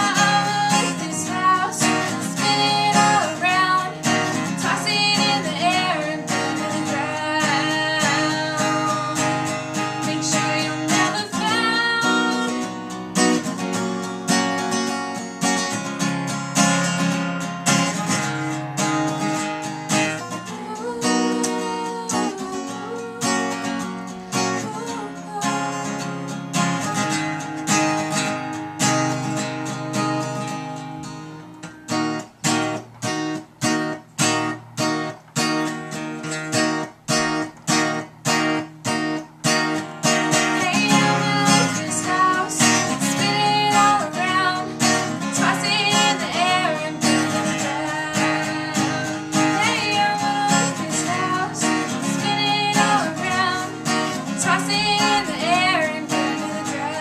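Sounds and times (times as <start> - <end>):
girl singing: 0.0 - 13.7, 19.9 - 27.4, 40.0 - 57.0
acoustic guitar strumming: 0.0 - 57.0.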